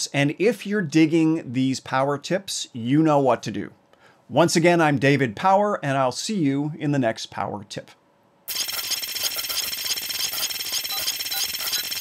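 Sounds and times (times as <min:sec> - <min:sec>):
digital crackle and stuttering clicks: 0:08.5 - 0:12.0
short high beeps: 0:08.5 - 0:12.0.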